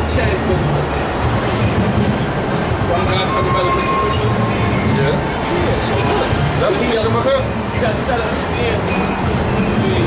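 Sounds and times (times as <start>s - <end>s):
traffic rumble: 0.0s - 10.0s
voices talking: 0.0s - 10.0s
thin steady whine: 0.4s - 10.0s.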